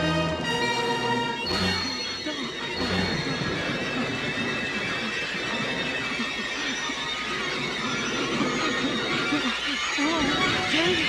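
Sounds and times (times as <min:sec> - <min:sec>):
heavy rain: 0:00.0 - 0:11.0.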